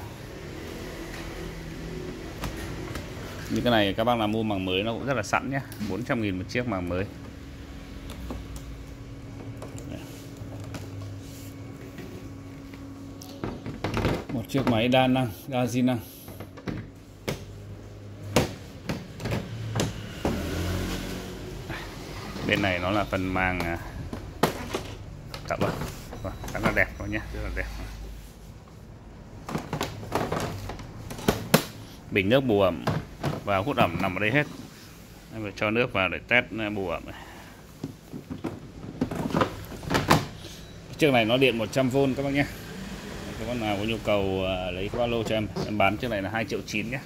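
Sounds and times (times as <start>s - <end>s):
plastic knocks and clunks: 13.4s - 14.9s, 29.4s - 31.8s, 37.8s - 40.4s.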